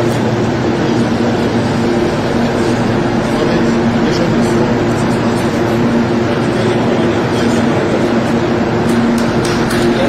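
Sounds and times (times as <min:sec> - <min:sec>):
low two-tone hum: 0:00.0 - 0:10.0
machinery drone: 0:00.0 - 0:10.0.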